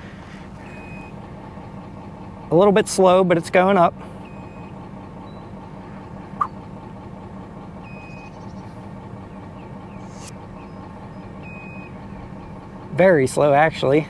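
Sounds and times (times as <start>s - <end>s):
electric lift motor humming: 4.1s - 13.0s
short chirp: 9.9s - 10.8s.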